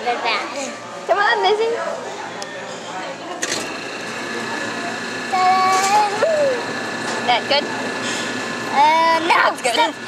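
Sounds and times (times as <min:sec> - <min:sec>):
ice cream machine whine: 0:00.5 - 0:10.0.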